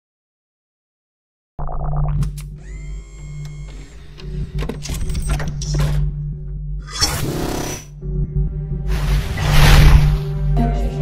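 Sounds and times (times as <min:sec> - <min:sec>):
low electronic drone: 0:02.0 - 0:10.6
loud whoosh: 0:08.9 - 0:10.4.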